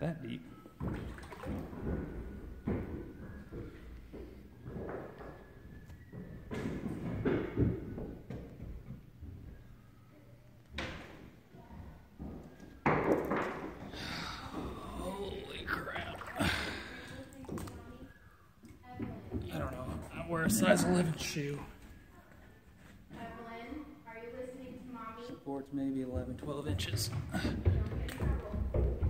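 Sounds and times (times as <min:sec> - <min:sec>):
floodwater sloshing and splashing: 0:00.8 - 0:02.0, 0:15.7 - 0:17.8
knocks and thumps: 0:00.8 - 0:09.6, 0:26.2 - 0:29.0.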